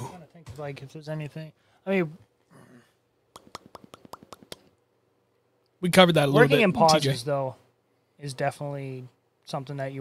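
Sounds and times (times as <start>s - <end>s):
sharp popping clicks: 3.3s - 4.8s.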